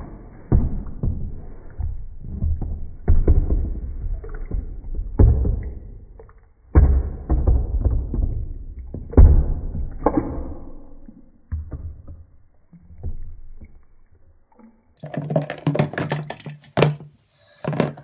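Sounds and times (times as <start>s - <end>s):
toys bumping in bath: 0.0s - 14.2s, 15.0s - 18.0s
bathwater splashing: 8.9s - 17.8s.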